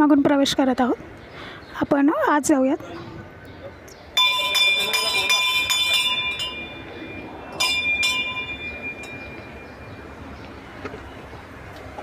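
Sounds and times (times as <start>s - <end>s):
temple bell ringing: 4.2s - 10.4s.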